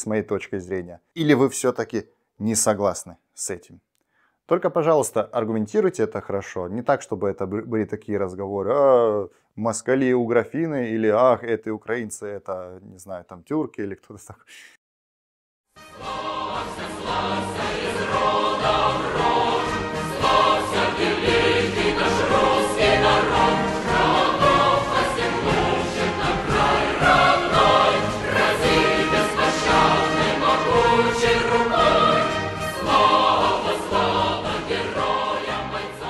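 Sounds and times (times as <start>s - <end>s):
choir with orchestra: 15.8s - 36.0s.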